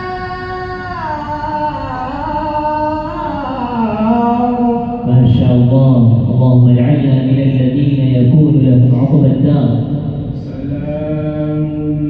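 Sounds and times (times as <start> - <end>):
man chanting recitation: 3.2 - 12.0.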